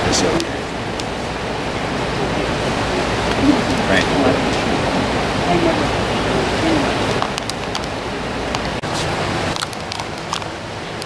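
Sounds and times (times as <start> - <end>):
faint voices: 0.0 - 9.2
creek water rushing: 0.0 - 11.0.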